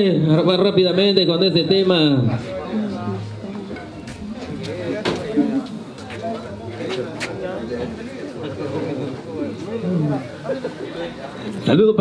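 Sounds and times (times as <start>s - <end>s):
party crowd voices: 0.0s - 12.0s.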